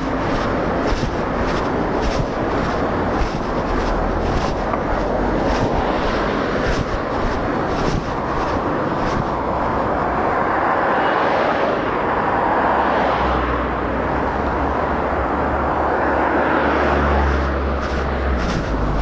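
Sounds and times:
low engine hum: 0:00.0 - 0:10.8, 0:15.4 - 0:19.0
vehicle road noise: 0:00.0 - 0:19.0.

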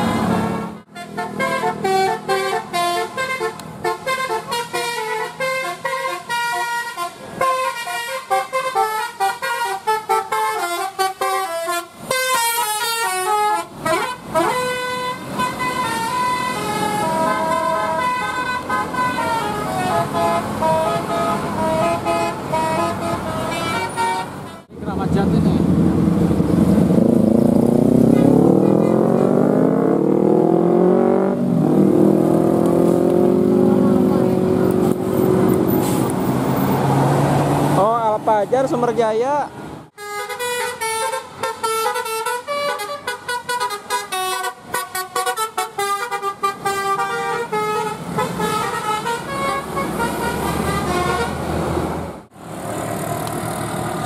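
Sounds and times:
bus horns playing melodic tunes: 0:00.0 - 0:24.8, 0:28.1 - 0:29.7, 0:39.9 - 0:51.9
vehicle engines accelerating: 0:13.7 - 0:40.0, 0:47.7 - 0:54.0.

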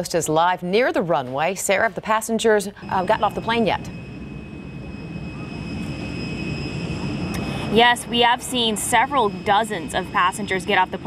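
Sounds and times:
jet aircraft rumble and whine: 0:02.6 - 0:11.0.

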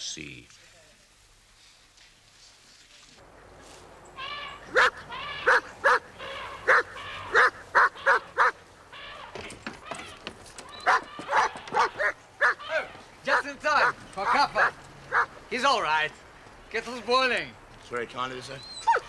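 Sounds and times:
dog barking: 0:04.7 - 0:08.6, 0:10.8 - 0:15.4.

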